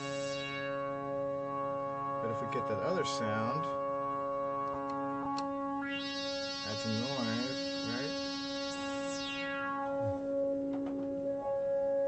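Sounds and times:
analog synthesizer low note: 0:00.0 - 0:12.0.

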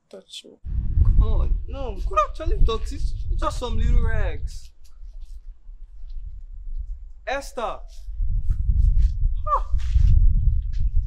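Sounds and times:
wind buffeting microphone: 0:00.7 - 0:11.0.

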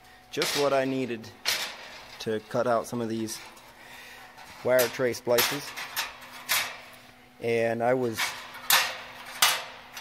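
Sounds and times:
steel strips clinking: 0:04.4 - 0:07.0, 0:08.1 - 0:10.0.

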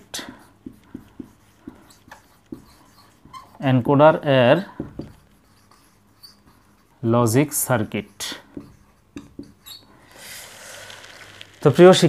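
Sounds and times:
marker writing on whiteboard: 0:00.0 - 0:10.3.

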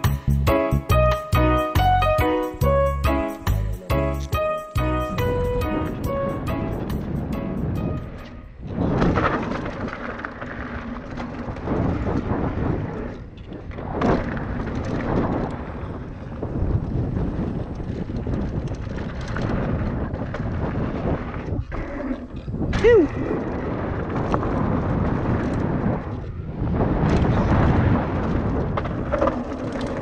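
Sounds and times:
wind buffeting microphone: 0:04.3 - 0:30.0
bike tyres rumbling over dirt: 0:08.6 - 0:30.0.

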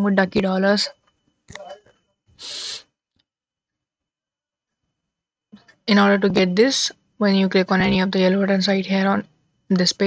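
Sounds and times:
sharp breath into microphone: 0:02.4 - 0:02.9.

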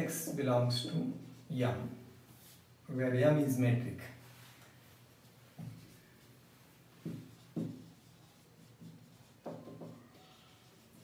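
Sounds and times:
marker writing on whiteboard: 0:05.1 - 0:11.0.

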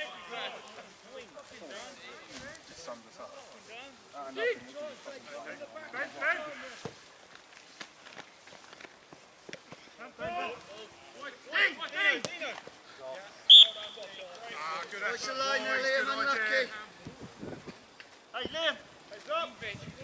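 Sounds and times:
shrill whistle blast: 0:13.5 - 0:14.0
players shouting: 0:13.5 - 0:16.9.

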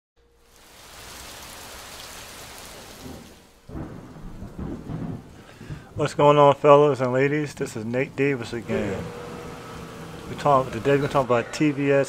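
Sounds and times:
rain hiss: 0:00.2 - 0:11.3
thunder rumbling: 0:02.6 - 0:11.1.

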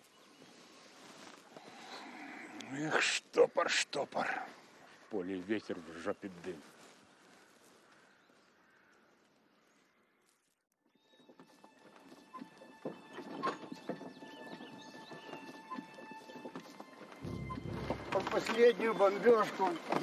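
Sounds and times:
horse hooves clip-clopping: 0:10.9 - 0:20.0.

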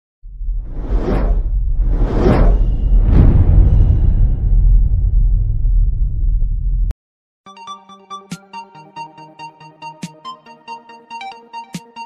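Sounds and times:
low rumble: 0:00.2 - 0:06.9
whoosh sound effect: 0:00.5 - 0:05.3.

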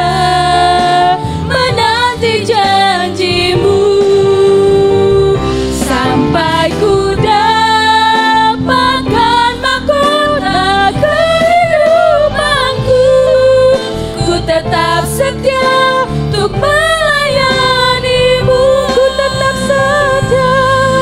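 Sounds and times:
instrumental accompaniment: 0:00.0 - 0:21.0
women singing a worship song: 0:00.0 - 0:21.0.

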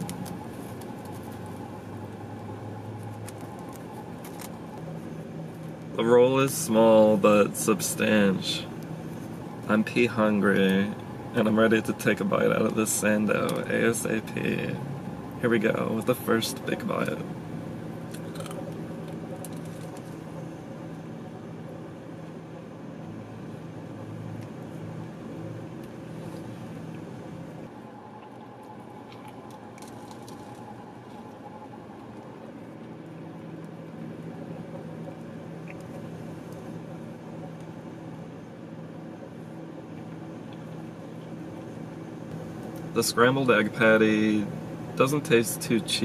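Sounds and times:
low car cabin hum: 0:00.0 - 0:46.0
person chewing food: 0:18.1 - 0:20.2, 0:28.1 - 0:31.4.

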